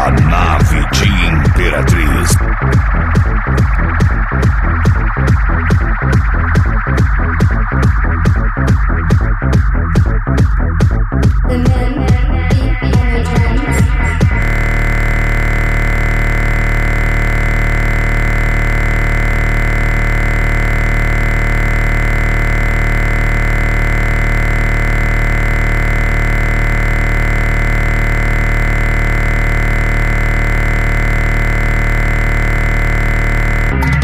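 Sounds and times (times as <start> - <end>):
sustained synthesizer chord: 0.0 - 34.0.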